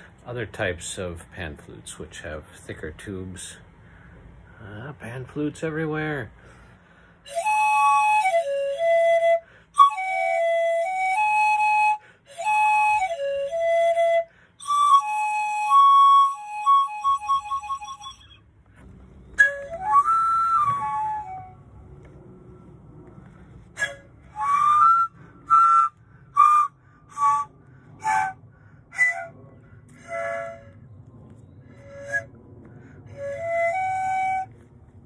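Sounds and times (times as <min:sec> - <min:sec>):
low steady background noise: 0:00.0 - 0:35.0
pan flute breathy notes: 0:06.4 - 0:35.0.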